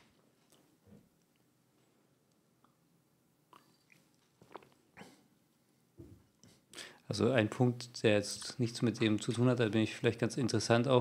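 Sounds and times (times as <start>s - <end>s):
man gulping water: 3.5s - 5.3s.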